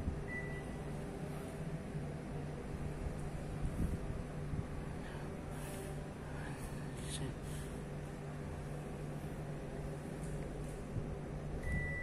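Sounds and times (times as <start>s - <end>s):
air conditioner running: 0.0s - 12.0s.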